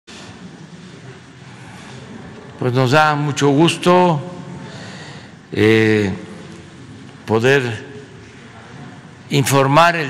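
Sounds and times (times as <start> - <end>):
background hiss: 0.1 - 10.0.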